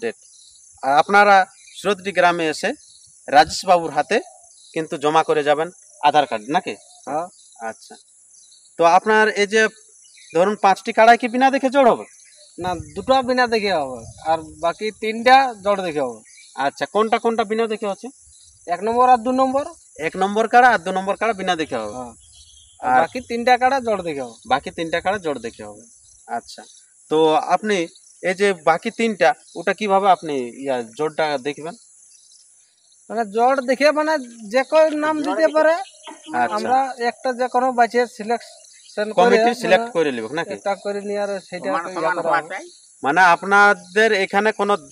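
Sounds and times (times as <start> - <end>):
insects droning: 0.0 - 44.9
man speaking: 0.8 - 8.0, 10.4 - 18.1, 18.7 - 22.2, 22.8 - 31.8, 33.1 - 44.9
man talking: 0.8 - 8.0, 8.8 - 9.7, 10.4 - 18.1, 18.7 - 22.2, 22.8 - 31.8, 33.1 - 44.9.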